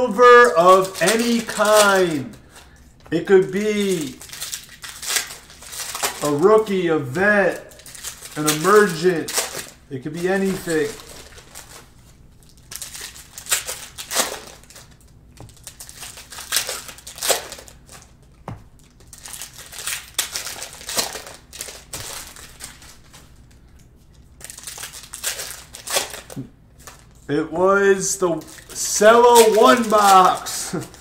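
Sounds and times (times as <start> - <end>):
cellophane wrappers crinkling: 0.0 - 27.3, 28.0 - 31.0
packs being torn open: 0.2 - 2.8, 3.6 - 6.8, 7.4 - 18.2, 18.8 - 23.5, 24.4 - 27.1, 28.2 - 31.0.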